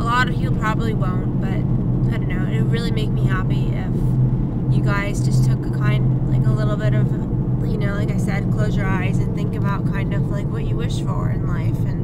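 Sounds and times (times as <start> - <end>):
car engine drone: 0.0 - 12.0
road noise: 0.0 - 12.0.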